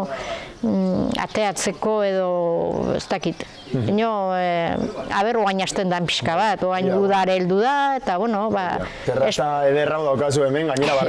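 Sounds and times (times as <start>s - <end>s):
woman talking: 0.6s - 8.9s.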